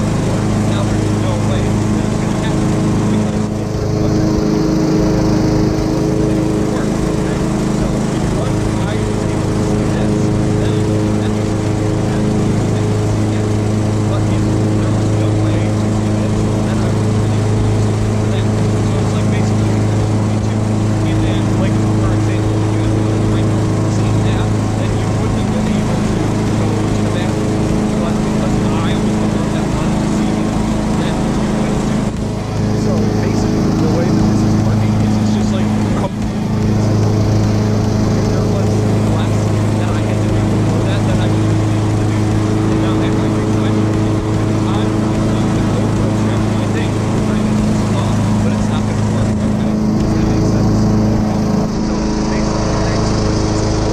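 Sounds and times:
lawn mower engine running: 0.0s - 53.9s
man talking: 0.0s - 53.9s.

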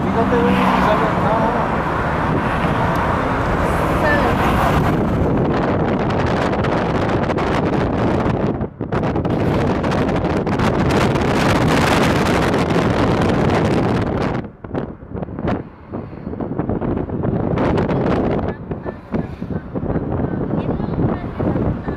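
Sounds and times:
road noise: 0.0s - 21.9s
wind buffeting microphone: 0.0s - 21.9s.

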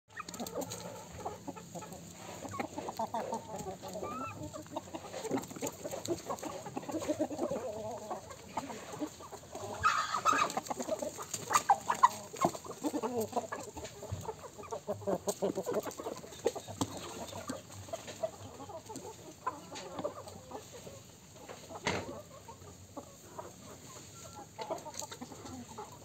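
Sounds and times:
chickens clucking: 0.1s - 26.0s
loud high-pitched chicken call: 9.6s - 10.6s.

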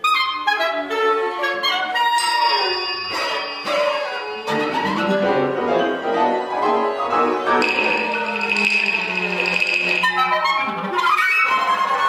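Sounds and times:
chamber ensemble playing: 1.4s - 12.0s.

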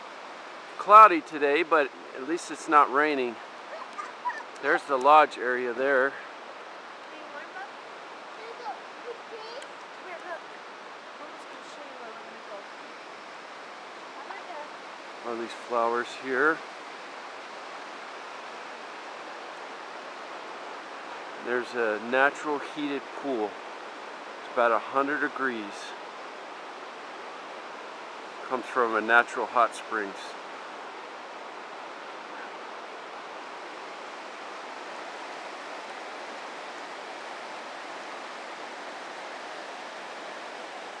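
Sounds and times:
white-water rapids rushing: 0.0s - 41.0s.

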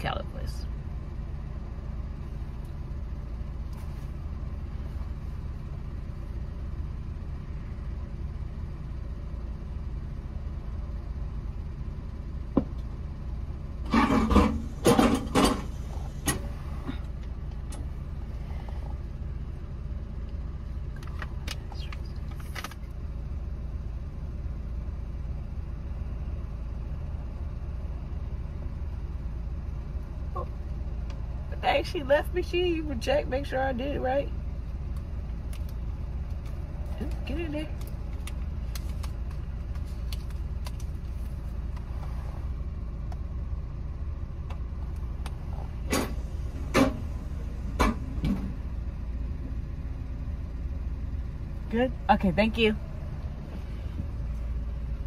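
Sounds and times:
car engine idling: 0.0s - 55.0s
rustling and clicking handling noises: 20.9s - 23.0s, 35.5s - 42.0s.

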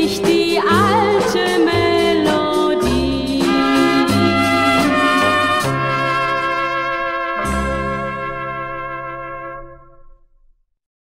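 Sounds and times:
brass band final chord: 3.4s - 10.2s.

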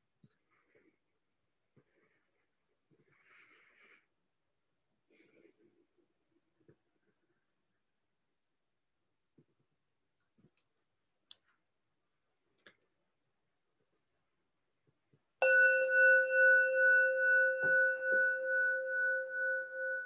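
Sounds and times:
meditation bell ringing: 15.4s - 20.0s.

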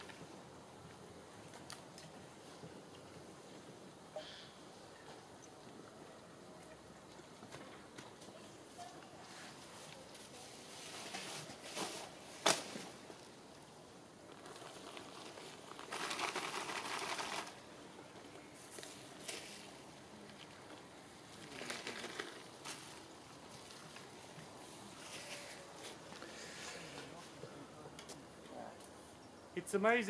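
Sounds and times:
plastic and reeds crinkling: 7.5s - 27.3s.

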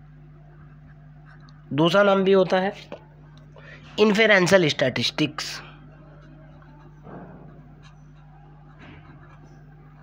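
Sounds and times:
low electrical hum: 0.0s - 10.0s
pen scratching on paper: 6.2s - 10.0s.

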